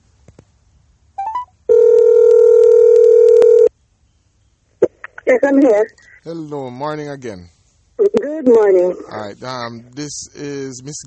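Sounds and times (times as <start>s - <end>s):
telephone ringback tone: 1.2s - 3.7s.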